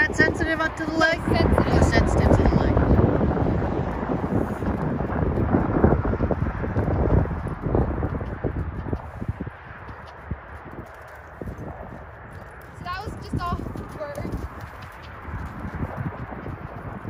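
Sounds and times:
wind on microphone: 0:00.0 - 0:17.0
hoofbeats in sand: 0:01.2 - 0:17.0.

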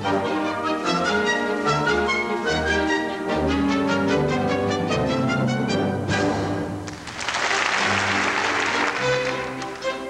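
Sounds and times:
orchestra playing softly: 0:00.0 - 0:10.0
audience applauding: 0:06.9 - 0:10.0.

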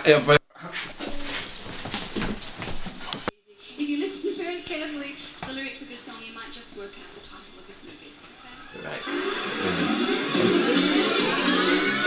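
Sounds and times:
live concert music on television: 0:08.5 - 0:12.0.

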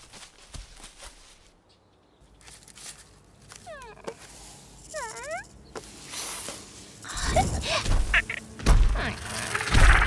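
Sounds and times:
faint forest ambience: 0:00.0 - 0:10.0.

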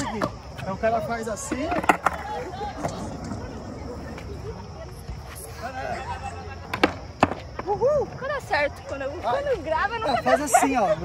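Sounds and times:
skateboard clacking on concrete: 0:00.0 - 0:04.5, 0:06.6 - 0:07.7
skateboard wheels rolling: 0:00.0 - 0:10.0.

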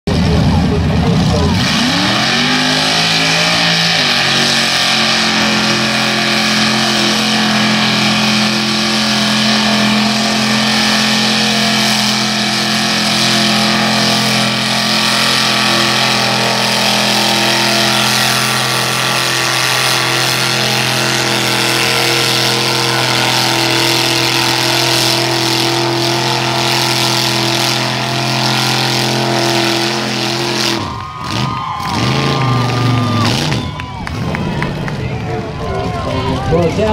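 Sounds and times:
truck engine revving: 0:00.0 - 0:36.9.

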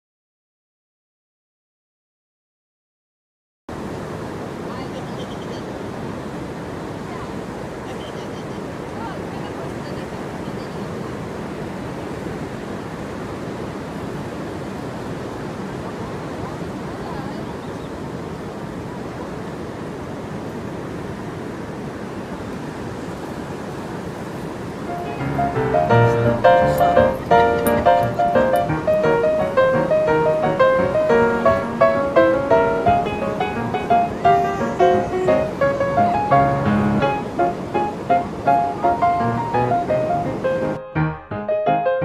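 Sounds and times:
ocean surf breaking: 0:03.7 - 0:42.0
faint distant voices: 0:07.0 - 0:11.5, 0:24.9 - 0:28.7, 0:30.9 - 0:36.6.

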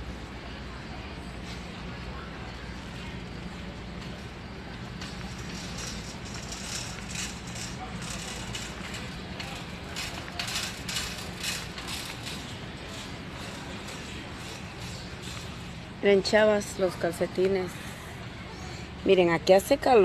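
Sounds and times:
steady low hum: 0:00.0 - 0:20.0
rustling and rattling: 0:05.0 - 0:15.5.

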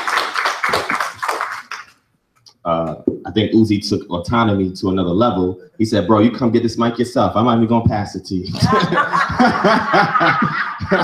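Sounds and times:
man chuckling into microphone: 0:08.6 - 0:11.0.

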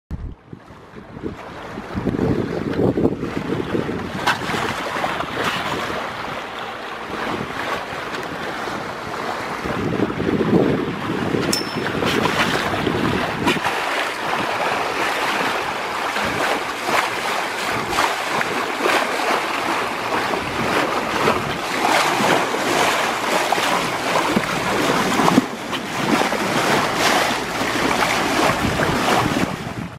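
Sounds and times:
water rushing along boat bow: 0:00.1 - 0:29.9
wind buffeting microphone: 0:00.1 - 0:29.9.

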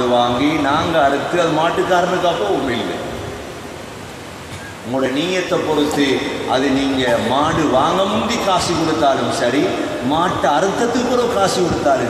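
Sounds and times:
man speaking: 0:00.0 - 0:03.1, 0:04.7 - 0:12.0
background hiss: 0:00.0 - 0:12.0.

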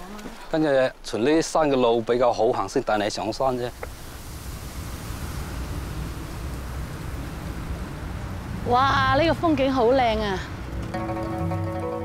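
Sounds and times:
wind on microphone: 0:03.5 - 0:10.8.

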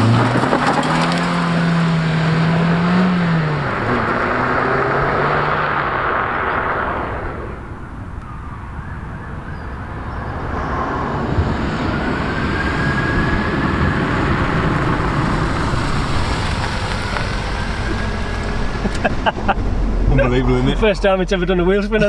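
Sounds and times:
car accelerating hard: 0:00.0 - 0:08.2, 0:09.7 - 0:22.0.

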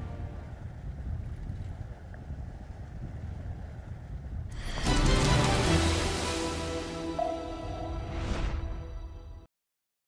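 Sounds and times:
wind buffeting microphone: 0:00.0 - 0:04.9.

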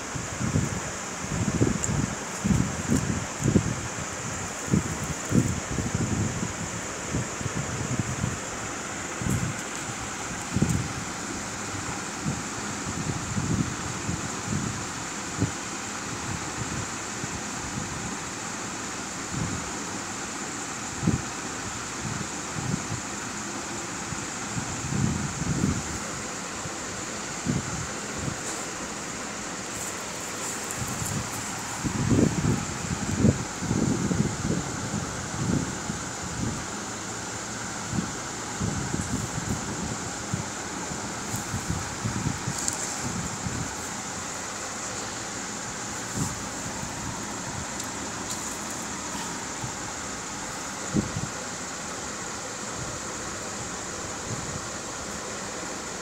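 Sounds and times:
background hiss: 0:00.0 - 0:56.0.

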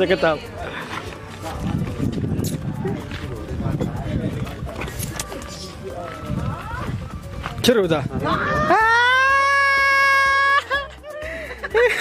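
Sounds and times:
outdoor noise: 0:00.0 - 0:12.0.

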